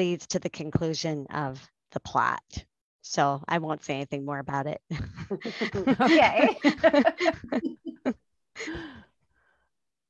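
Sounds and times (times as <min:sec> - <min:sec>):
woman saying okay: 0:05.5 - 0:06.6
woman sighing: 0:08.6 - 0:09.1.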